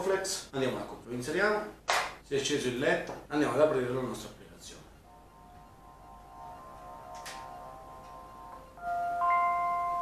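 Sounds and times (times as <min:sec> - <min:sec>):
smart speaker electronic chime: 0:05.2 - 0:10.0.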